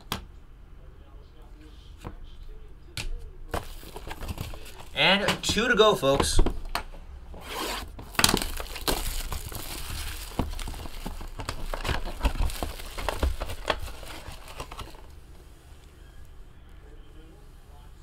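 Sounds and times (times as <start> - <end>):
plastic wrapping tearing and crinkling: 7.5 - 15.1.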